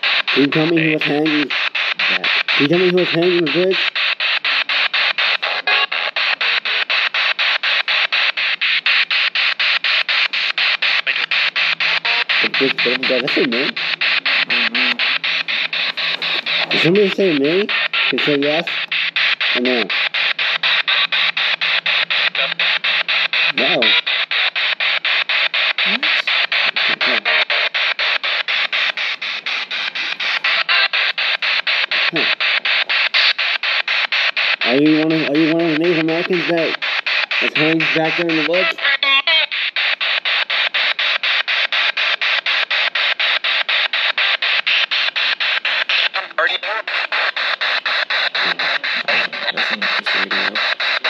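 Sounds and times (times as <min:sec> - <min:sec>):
radio static bursts: 0:00.0 - 0:51.0
snatches of radio sound: 0:00.0 - 0:51.0.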